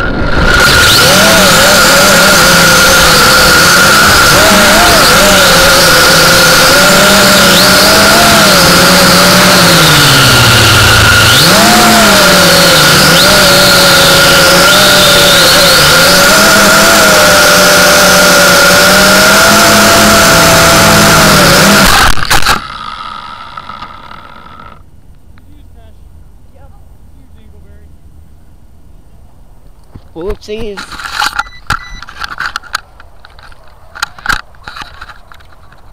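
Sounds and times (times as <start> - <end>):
wind noise: 0.0 - 1.8
electric motors whining: 0.0 - 24.9.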